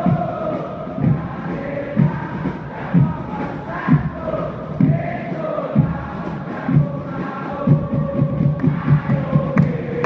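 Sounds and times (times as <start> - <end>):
crowd chanting in unison: 0.0 - 10.0
drum beating steadily: 0.0 - 10.0.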